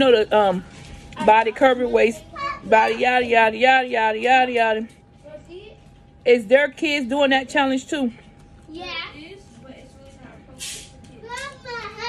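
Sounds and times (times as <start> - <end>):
young child speaking: 2.1 - 3.0, 5.2 - 5.8, 8.7 - 12.0
short hiss: 10.6 - 11.0.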